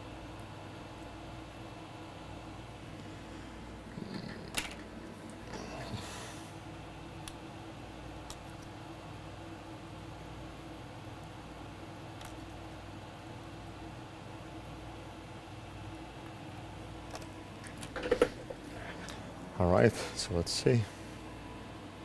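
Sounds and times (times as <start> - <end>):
low equipment hum: 0.0 - 22.0
light clicks of small parts: 12.2 - 12.8, 17.0 - 17.9.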